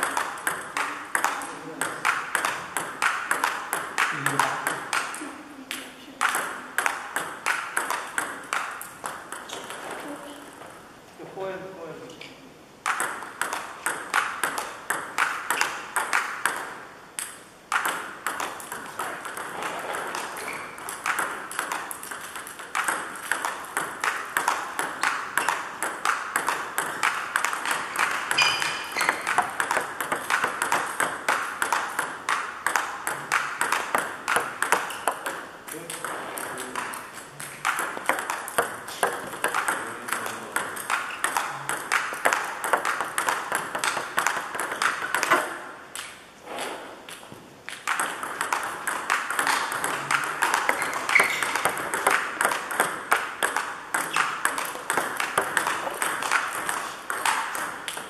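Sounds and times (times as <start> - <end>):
table tennis balls clicking: 0.0 - 10.8, 12.8 - 58.0.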